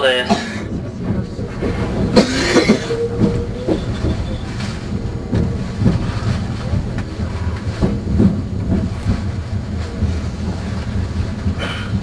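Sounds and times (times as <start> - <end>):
low train rumble: 0.0 - 12.0
steady train whine: 0.0 - 12.0
train wheels clattering over rail joints: 0.2 - 12.0.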